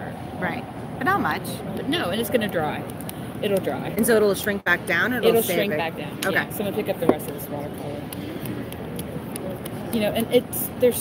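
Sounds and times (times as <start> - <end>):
hum of busy hall: 0.0 - 11.0
indistinct chatter: 0.0 - 11.0.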